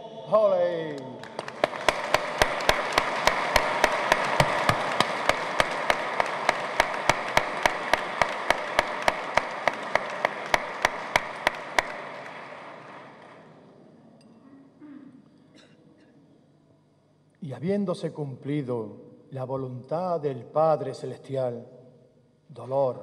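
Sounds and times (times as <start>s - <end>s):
audience applause: 1.0s - 13.6s
loud close hand clapping: 1.2s - 13.5s.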